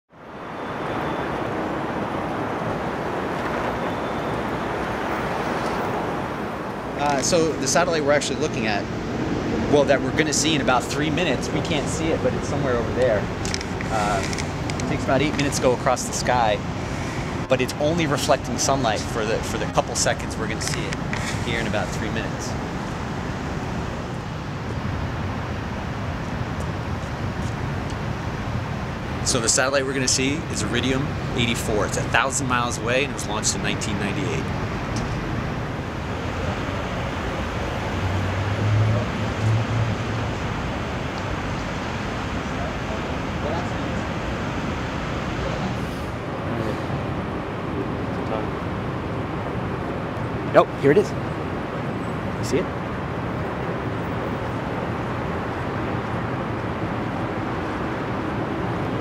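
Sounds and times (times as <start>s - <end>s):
distant traffic hum: 0.1s - 59.0s.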